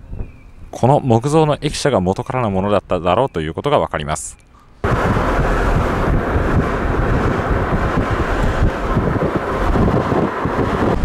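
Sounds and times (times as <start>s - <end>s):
wind buffeting microphone: 0.0s - 2.7s, 4.8s - 11.0s
road and engine noise: 4.3s - 11.0s.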